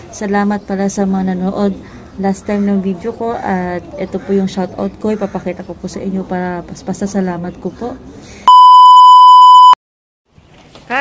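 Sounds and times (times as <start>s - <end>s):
electronic bleep tone: 8.5s - 9.8s.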